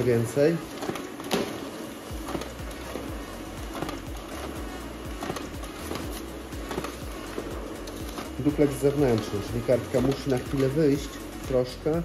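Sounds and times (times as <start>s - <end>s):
paper feed clicking: 0.0s - 12.0s
printer motor hum: 0.0s - 12.0s.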